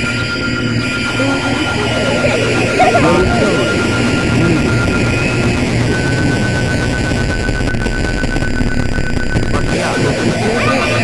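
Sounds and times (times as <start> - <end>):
warped voice-like fragments: 0.0 - 8.2, 8.8 - 11.0
low hum: 0.0 - 11.0
noisy texture: 0.0 - 11.0
steady high tone: 0.0 - 11.0.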